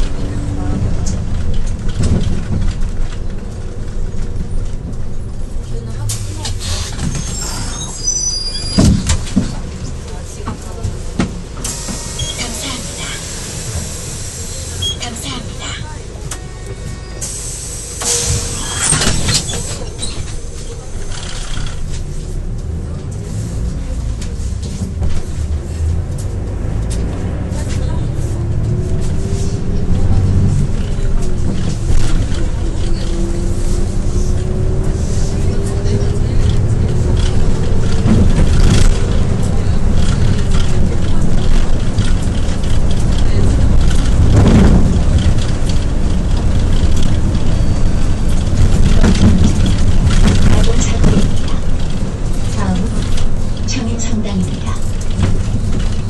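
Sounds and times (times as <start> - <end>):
bus body knocking over bumps: 0.0 - 7.3, 8.6 - 12.1, 24.1 - 56.0
bus engine and road noise rumbling: 0.0 - 56.0.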